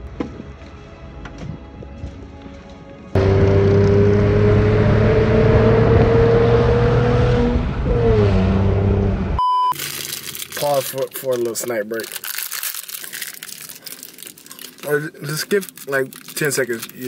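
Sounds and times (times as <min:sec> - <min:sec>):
car engine revving: 0:03.2 - 0:09.4
short high beep: 0:09.4 - 0:09.8.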